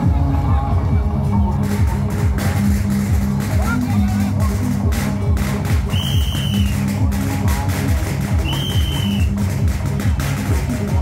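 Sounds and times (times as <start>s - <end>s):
electronic dance music: 0.0s - 11.0s
high whistle-like tone: 5.9s - 6.8s, 8.4s - 9.4s.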